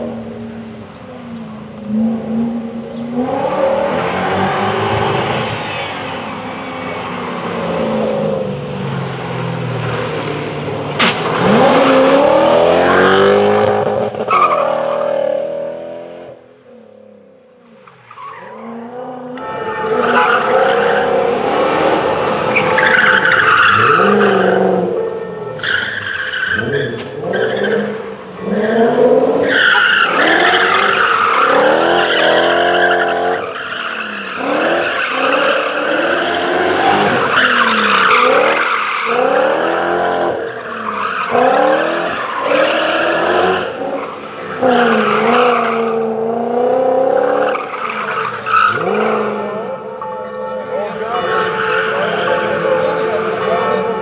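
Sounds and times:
car engine revving: 1.7s - 17.4s, 18.4s - 49.9s.

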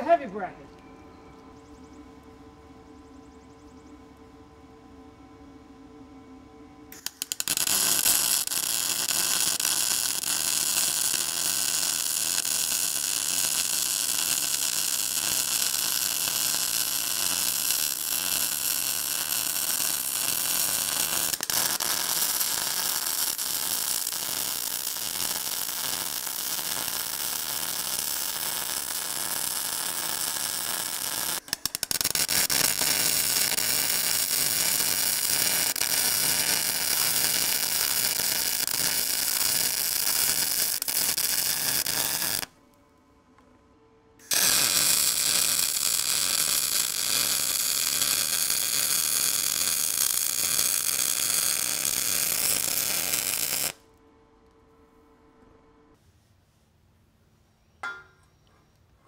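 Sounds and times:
welding arc hissing: 7.0s - 42.5s, 44.2s - 53.8s.

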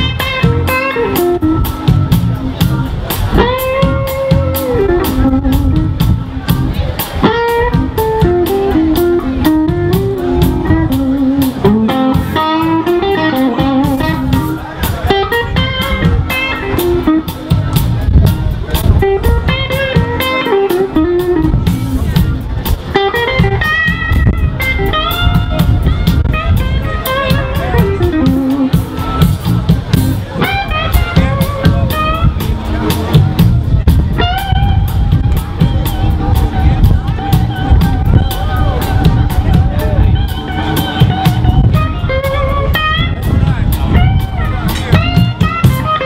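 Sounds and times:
electric guitar lead: 0.0s - 46.0s
live blues band playing: 0.0s - 46.0s.

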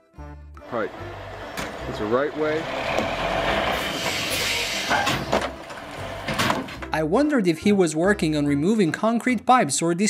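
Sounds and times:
background music: 0.0s - 10.0s
diesel truck engine running: 0.6s - 6.7s
outdoor noise: 0.9s - 6.8s.

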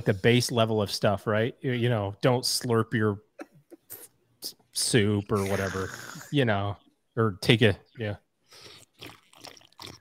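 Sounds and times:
man slurping a drink: 5.3s - 6.3s, 8.5s - 10.0s.

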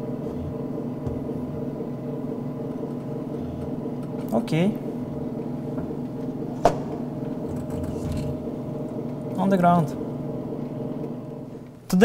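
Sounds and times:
simulated aircraft engine drone: 0.0s - 11.9s.

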